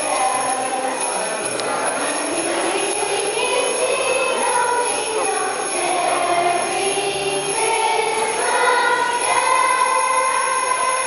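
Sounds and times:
children's choir singing: 0.0s - 11.0s
jingle bells shaking: 0.0s - 11.0s.

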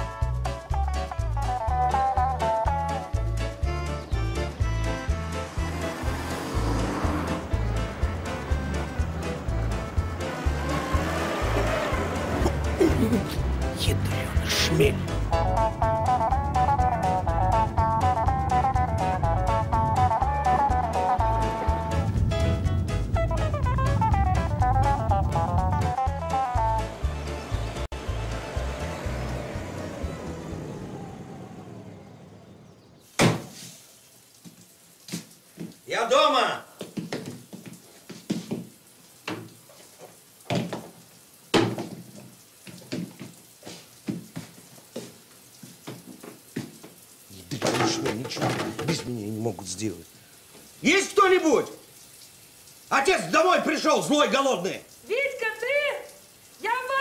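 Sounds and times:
footsteps in hallway: 36.8s - 41.0s, 41.8s - 47.0s
knock on front door: 41.5s - 42.1s.

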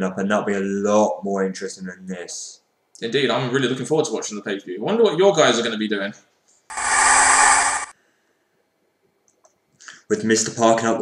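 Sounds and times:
tv static hiss: 6.7s - 7.9s.

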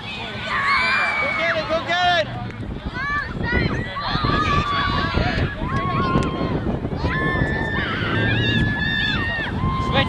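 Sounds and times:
children shouting and shrieking: 0.0s - 10.0s.

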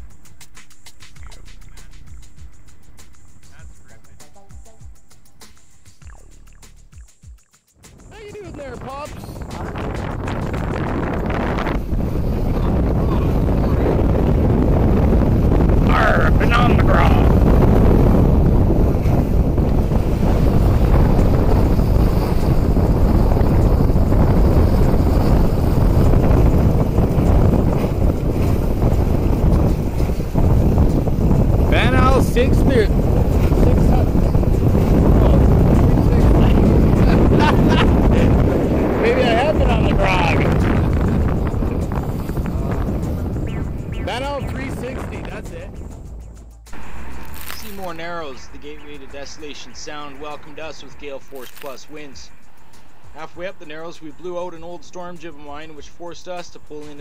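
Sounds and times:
wind buffeting microphone: 8.0s - 57.0s
water rushing along boat hull: 8.3s - 45.7s.

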